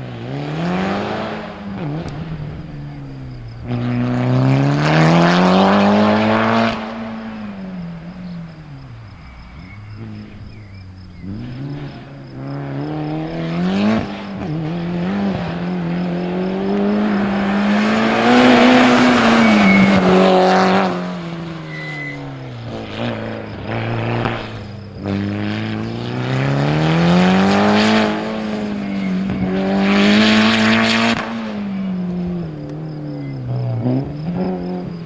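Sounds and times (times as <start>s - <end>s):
rally car engine revving: 0.0s - 35.0s.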